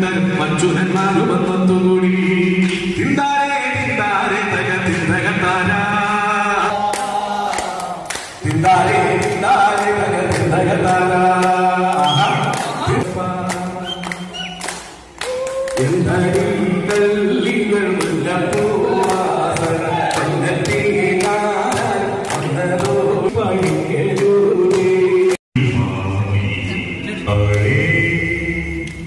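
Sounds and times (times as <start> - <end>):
man singing over loudspeakers: 0.0 - 29.0
hand claps: 6.9 - 25.4.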